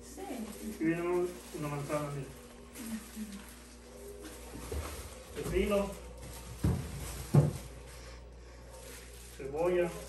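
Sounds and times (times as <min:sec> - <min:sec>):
dull knocks in refrigerator: 0:06.6 - 0:07.7.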